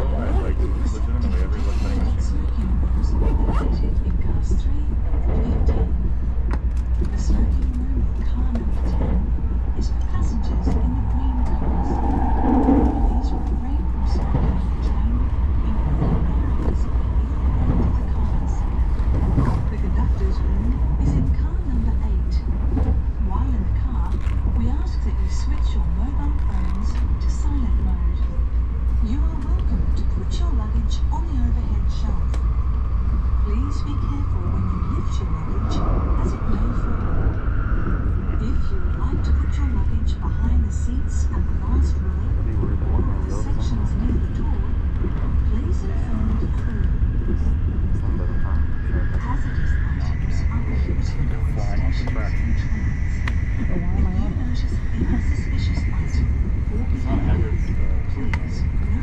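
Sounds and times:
indistinct passenger voices: 0.0s - 59.0s
low rumble of train running: 0.0s - 59.0s.

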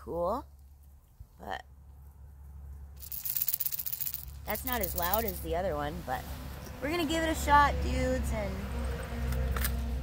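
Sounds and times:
beads rattling in lure: 3.0s - 5.6s.

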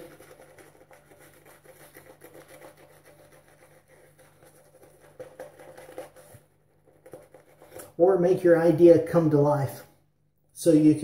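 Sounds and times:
shaving brush scratching lather: 0.0s - 8.1s.

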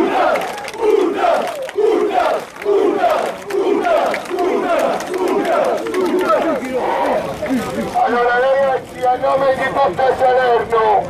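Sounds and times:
crowd chanting in unison: 0.0s - 7.3s.

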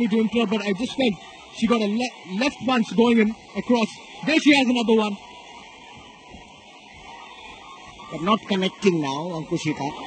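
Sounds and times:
boxing arena broadcast din: 0.0s - 10.0s.

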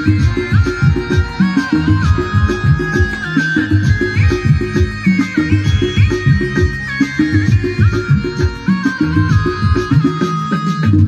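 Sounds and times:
drum and bass beat: 0.0s - 11.0s
high lead melody: 0.0s - 11.0s.

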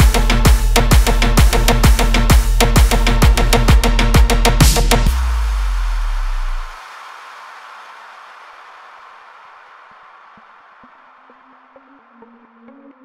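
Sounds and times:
deep bass boom sliding down: 0.0s - 6.8s.

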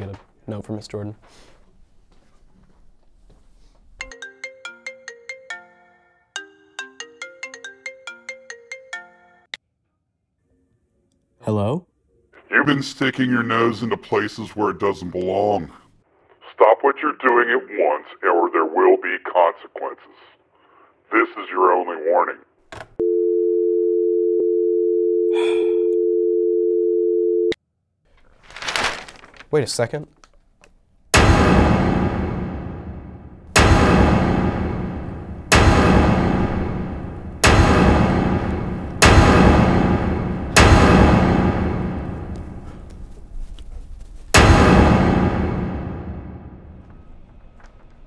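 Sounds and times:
phone ringtone melody: 4.0s - 9.5s
short breath: 20.5s - 21.0s, 25.3s - 26.0s
telephone dial tone: 23.0s - 27.6s
paper rustling: 28.1s - 30.8s.

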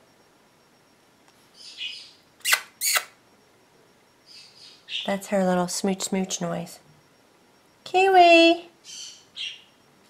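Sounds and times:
bird making kissing smacks: 2.4s - 3.1s.

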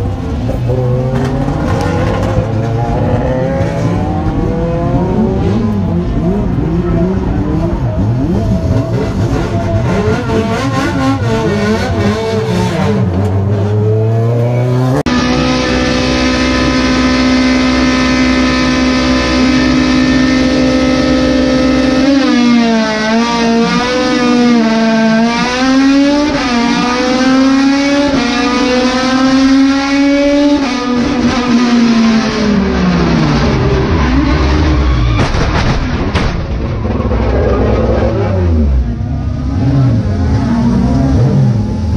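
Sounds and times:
race car engine with gear changes: 0.0s - 36.0s, 36.6s - 41.9s
race car engine revving: 0.0s - 41.9s.

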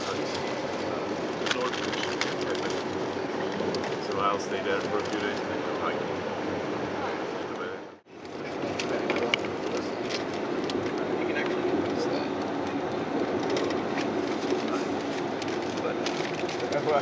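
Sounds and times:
vehicle ride rumble: 0.0s - 17.0s
small clicks and rattles: 13.3s - 17.0s.

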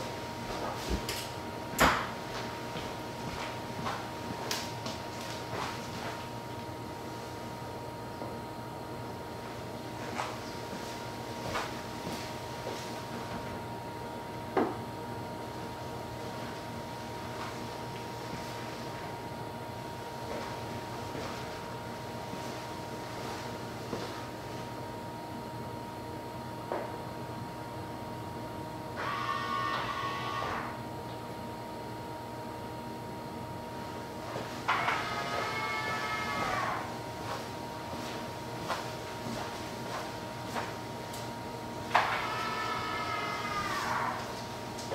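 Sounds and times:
charger hum with high tone: 0.0s - 44.9s.

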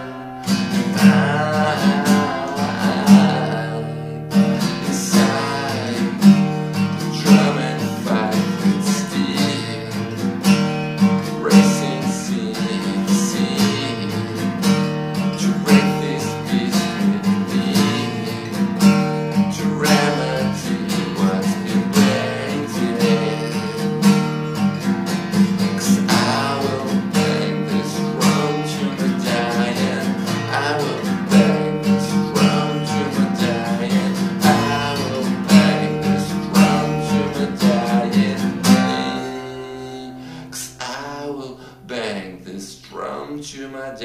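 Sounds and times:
acoustic guitar strumming chords: 0.0s - 43.2s.

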